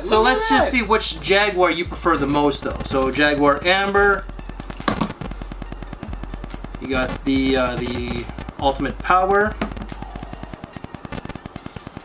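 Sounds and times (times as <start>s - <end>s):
microphone static crackling: 0.0s - 12.0s.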